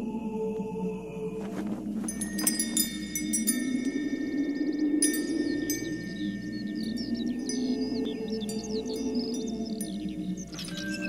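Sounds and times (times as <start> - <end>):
low steady drone: 0.0 - 11.0
wind chimes ringing: 2.0 - 11.0
bird-like chirps: 2.4 - 11.0.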